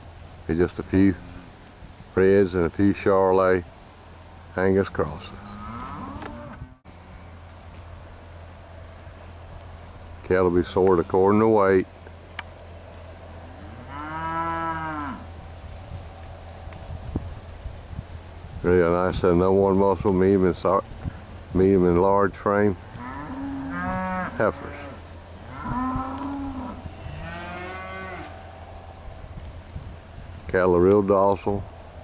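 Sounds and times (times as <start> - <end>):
cow mooing: 5.3 - 6.8, 13.4 - 15.2, 22.9 - 28.4.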